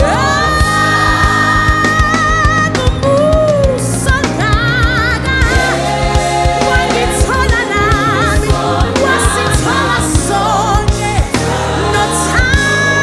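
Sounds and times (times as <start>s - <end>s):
gospel choir singing: 0.0s - 2.6s, 5.2s - 13.0s
band with bass and keyboards: 0.0s - 13.0s
drums steady beat: 0.0s - 13.0s.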